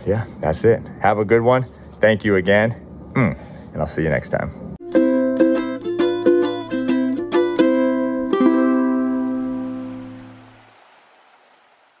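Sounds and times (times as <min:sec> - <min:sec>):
strummed ukulele chord: 0:04.8 - 0:10.4
soft hiss: 0:07.3 - 0:12.0.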